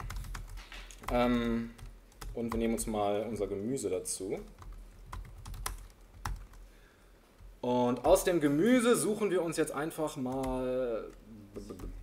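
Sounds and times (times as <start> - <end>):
laptop keyboard keystrokes: 0.0 - 2.7, 4.5 - 6.6.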